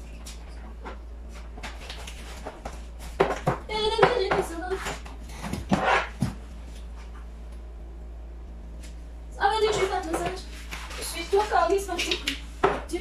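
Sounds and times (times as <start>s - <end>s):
high-pitched wordless voice: 9.4s - 10.4s.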